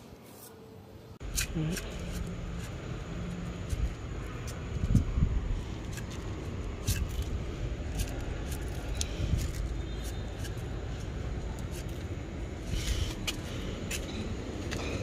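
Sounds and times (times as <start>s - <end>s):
granules ticking on soil: 1.2s - 12.2s
steady low rumble: 1.2s - 15.0s.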